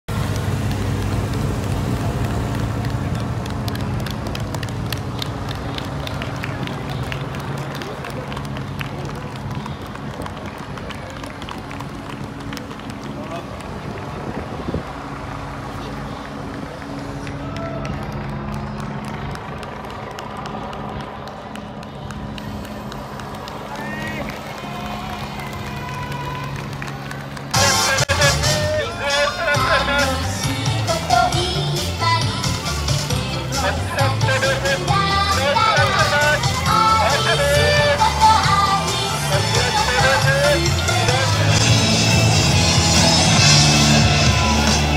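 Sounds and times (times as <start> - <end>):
vehicle engine hum: 0.0 - 44.9
voices and calls: 27.6 - 41.8
loud music: 27.6 - 44.9.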